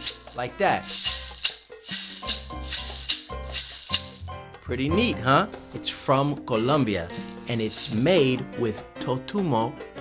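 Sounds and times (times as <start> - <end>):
maraca rattling: 0.0 - 4.4, 7.0 - 8.4.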